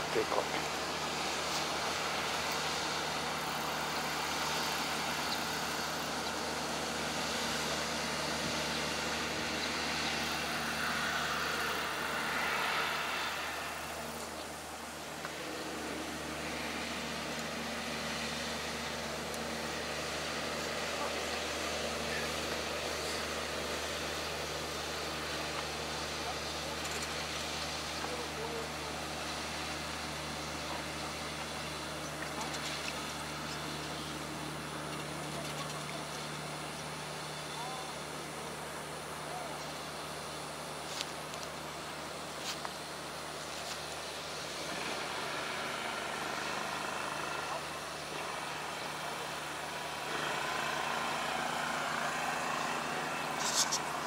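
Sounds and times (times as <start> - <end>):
engine idling: 0.0 - 54.0
outdoor noise: 0.0 - 54.0.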